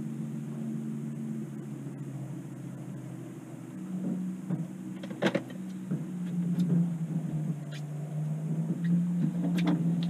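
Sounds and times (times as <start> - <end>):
boat motor humming: 0.0 - 10.0.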